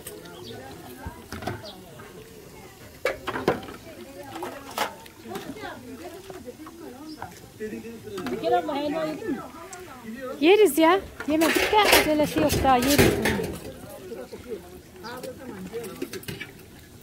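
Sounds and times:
quiet background chatter: 0.0s - 17.0s
metal food trays clattering: 11.2s - 13.8s.

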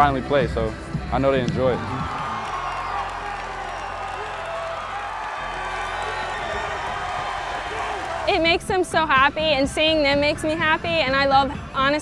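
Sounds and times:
background music with bass line: 0.0s - 12.0s
crowd cheering and shouting: 1.6s - 8.7s.

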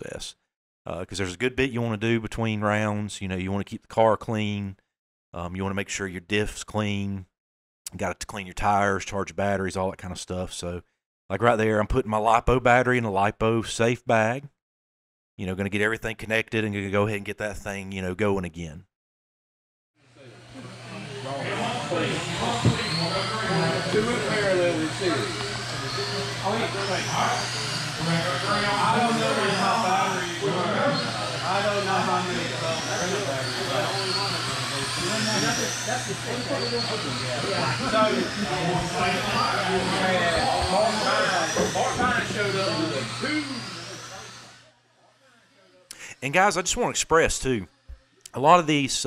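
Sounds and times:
people talking: 0.0s - 4.8s, 5.4s - 7.3s, 7.9s - 14.5s, 15.4s - 18.8s, 20.6s - 44.4s, 45.9s - 47.7s, 48.3s - 49.0s
electric rc cars whining: 20.1s - 45.9s.

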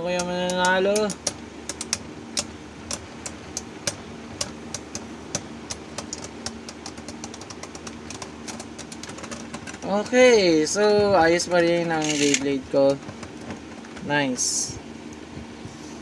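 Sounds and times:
spinning tops whirring: 11.3s - 13.0s
spinning tops clacking together: 12.0s - 12.5s.

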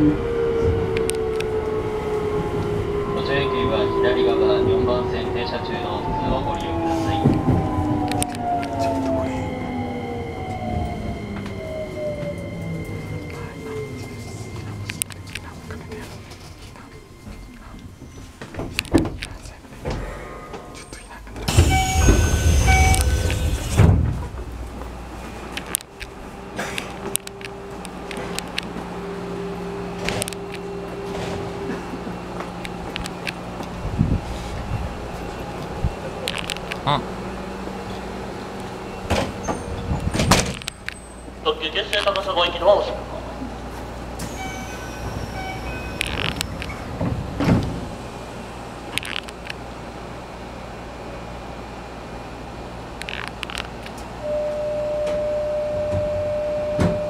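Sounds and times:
train electrical hum: 0.0s - 57.0s.

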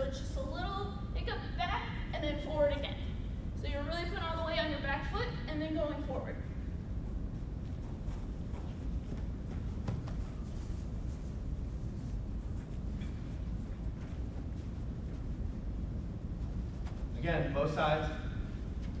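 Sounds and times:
low room rumble: 0.0s - 19.0s
footsteps on artificial turf: 7.0s - 17.2s.

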